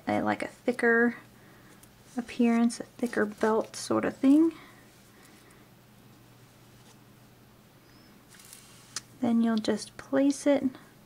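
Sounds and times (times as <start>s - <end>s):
steady low hum: 0.0s - 11.0s
soft yarn rustle: 1.7s - 5.5s, 6.2s - 7.0s.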